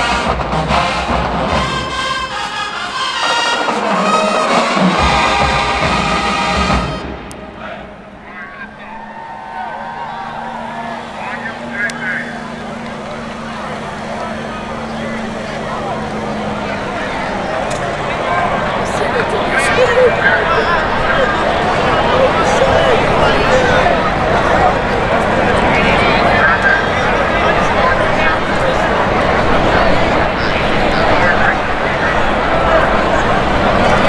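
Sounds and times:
marching band brass and drums: 0:00.0 - 0:09.1
crowd chatter: 0:00.0 - 0:34.0.

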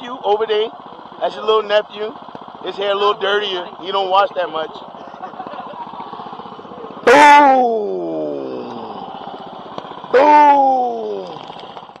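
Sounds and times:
motor whine from throttle blips: 0:00.0 - 0:12.0
quadcopter motor hum: 0:00.0 - 0:12.0.

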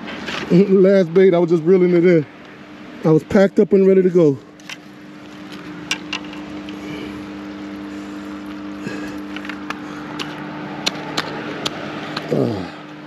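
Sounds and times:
engine running steadily: 0:00.0 - 0:13.0.

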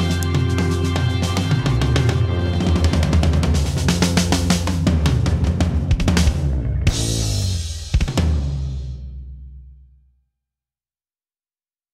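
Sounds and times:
rock band playing: 0:00.0 - 0:09.0
drum hit: 0:00.0 - 0:09.2.

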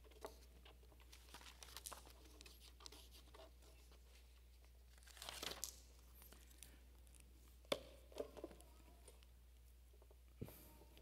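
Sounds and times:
crinkling: 0:00.0 - 0:10.2.

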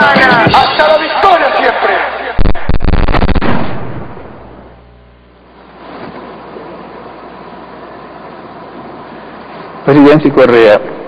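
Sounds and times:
faint hum: 0:02.4 - 0:11.0.

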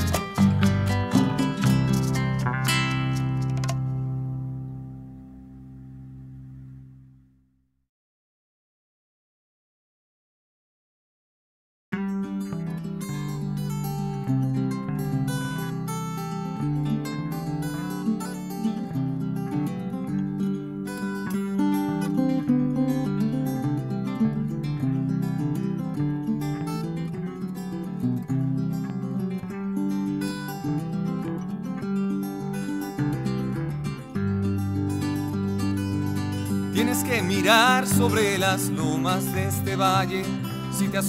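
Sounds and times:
acoustic guitar picked and strummed: 0:00.0 - 0:07.3, 0:12.0 - 0:41.0.

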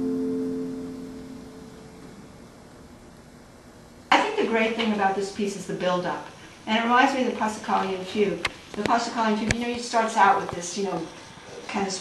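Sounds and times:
harpsichord chord ringing: 0:00.0 - 0:02.2.

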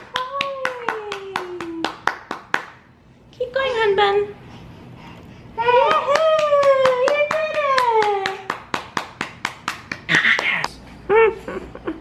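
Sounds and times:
hands clapping: 0:00.0 - 0:02.8, 0:05.9 - 0:10.7.

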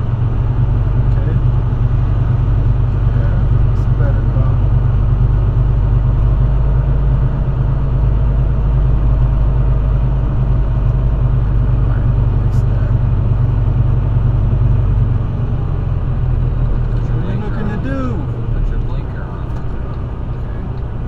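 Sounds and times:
diesel truck engine drone: 0:00.0 - 0:21.0.

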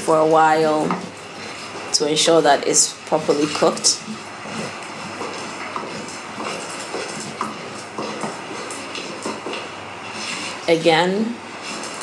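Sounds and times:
stick scraping dough in pot: 0:00.0 - 0:12.0
stick knocking against pot: 0:03.4 - 0:09.8.

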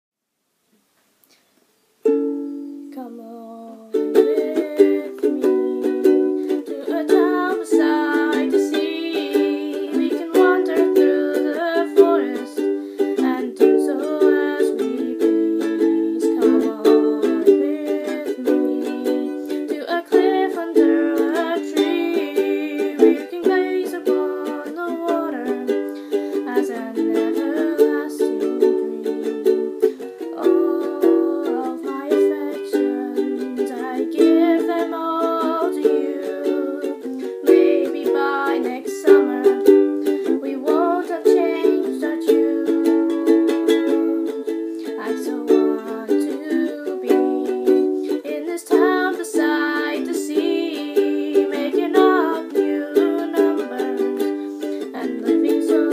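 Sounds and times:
ukulele strumming: 0:02.0 - 0:55.9.

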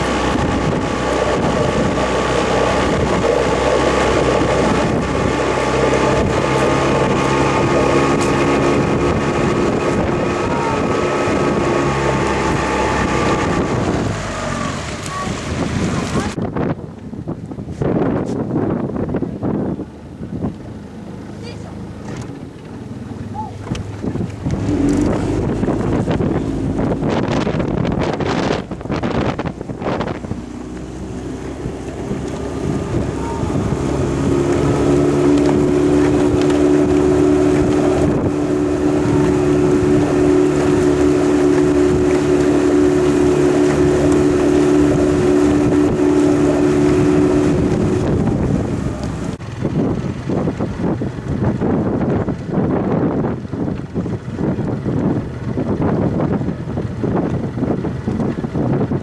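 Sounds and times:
outboard motor humming: 0:00.0 - 0:59.0
wind buffeting microphone: 0:00.0 - 0:59.0.

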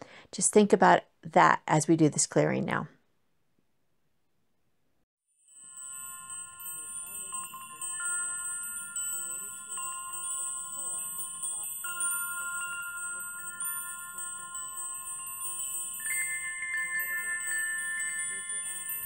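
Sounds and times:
metal chimes ringing: 0:05.5 - 0:19.0.

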